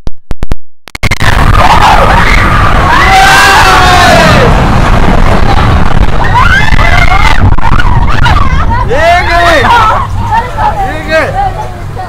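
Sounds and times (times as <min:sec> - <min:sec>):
roller coaster rumbling on track: 0:01.2 - 0:12.0
riders shouting and whooping: 0:01.5 - 0:04.6, 0:05.3 - 0:11.7.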